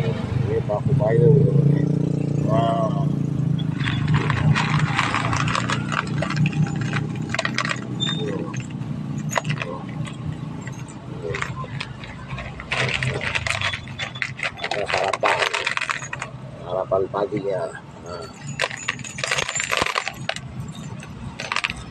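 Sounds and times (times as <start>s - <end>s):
metal nails clicking and crunching: 3.6s - 16.4s, 18.2s - 21.9s.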